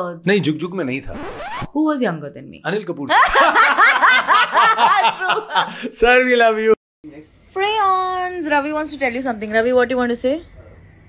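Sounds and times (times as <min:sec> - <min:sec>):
woman laughing hard: 0:03.1 - 0:05.8.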